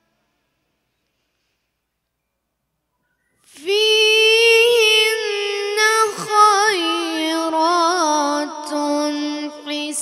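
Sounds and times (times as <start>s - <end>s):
boy reciting melodically: 3.5s - 10.0s.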